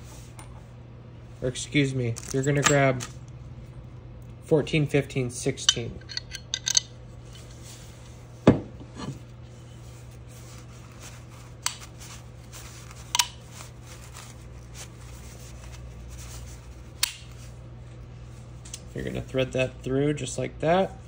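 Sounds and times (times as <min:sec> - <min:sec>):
steady low hum: 0:00.0 - 0:21.0
metal parts knocking on wood: 0:05.7 - 0:06.9.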